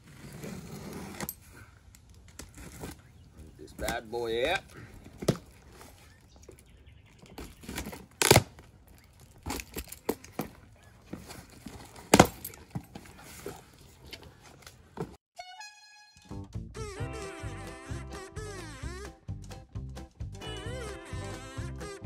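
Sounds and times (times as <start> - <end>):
background music: 15.4 - 22.0.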